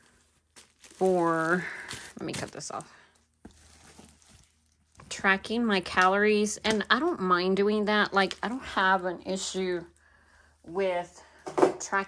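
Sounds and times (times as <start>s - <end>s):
plastic wrapping rustling: 0.0s - 9.6s.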